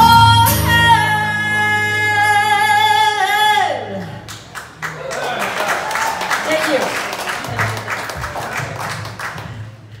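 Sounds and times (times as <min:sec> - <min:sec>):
audience applauding: 0:04.2 - 0:10.0.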